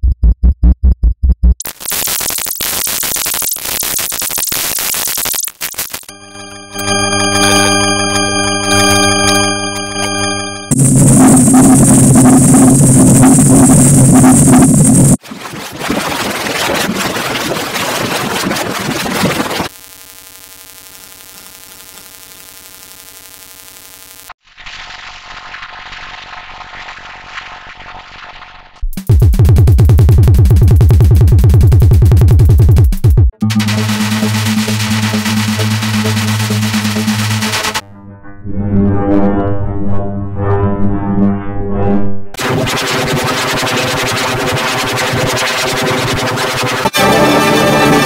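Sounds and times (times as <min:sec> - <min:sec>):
buzzy pitched tone: 0:01.6 - 0:15.2, 0:33.4 - 0:41.5, 0:42.4 - 0:48.0
loud harsh noise: 0:01.7 - 0:15.2, 0:33.4 - 0:37.8, 0:42.4 - 0:48.0.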